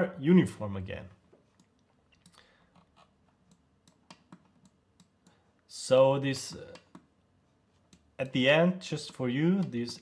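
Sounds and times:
computer mouse clicks: 1.5s - 5.4s.

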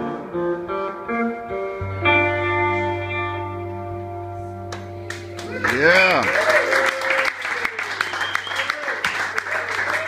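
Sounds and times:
electric guitar playing: 0.0s - 6.9s.

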